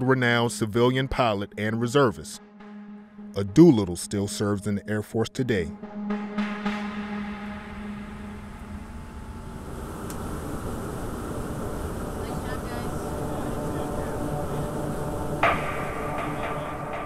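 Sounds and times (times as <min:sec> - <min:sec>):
held musical tone: 0:00.0 - 0:17.0
steady rushing noise in cockpit: 0:07.8 - 0:16.6.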